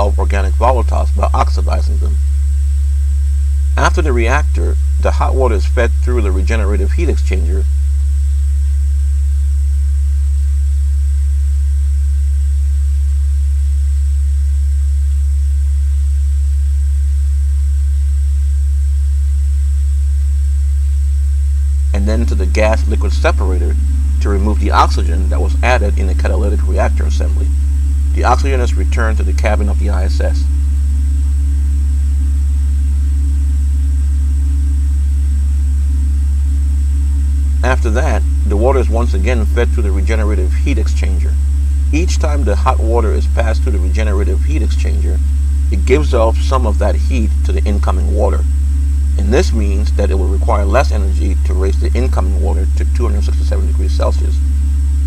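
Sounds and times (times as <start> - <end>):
faint high-pitched whine: 0.0 - 2.4, 3.7 - 7.8, 21.9 - 30.8, 37.1 - 48.5, 49.1 - 55.0
faint steady tones: 0.0 - 2.6, 3.3 - 8.6, 21.7 - 33.5
loud steady low hum: 0.0 - 55.0.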